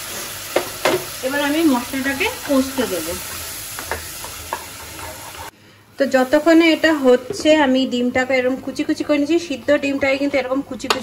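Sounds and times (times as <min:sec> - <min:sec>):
sauce sizzling: 0:00.0 - 0:10.8.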